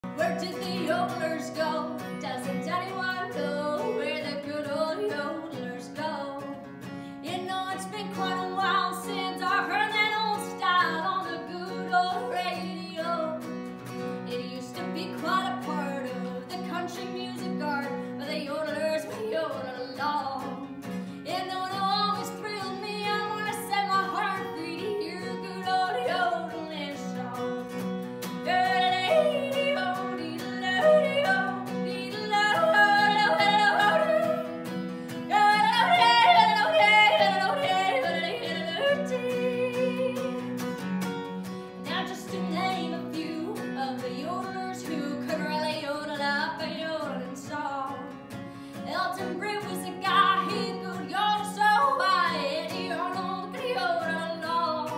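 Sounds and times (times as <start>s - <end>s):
strummed acoustic guitar: 0.0s - 54.9s
woman singing and yodeling: 0.1s - 6.5s, 7.2s - 13.4s, 14.3s - 27.5s, 28.4s - 34.6s, 35.3s - 40.4s, 41.9s - 48.1s, 48.8s - 54.9s.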